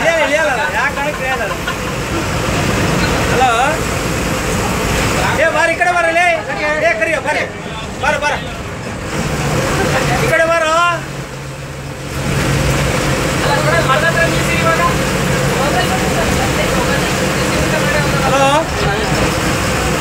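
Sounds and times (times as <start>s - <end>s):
bus engine humming: 0.0s - 20.0s
road noise: 0.0s - 20.0s
voices talking: 0.0s - 20.0s.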